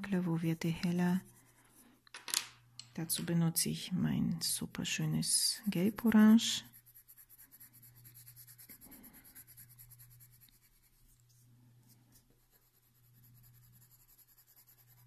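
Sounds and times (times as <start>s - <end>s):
pencil scratching on paper: 5.6s - 11.4s, 12.1s - 15.0s.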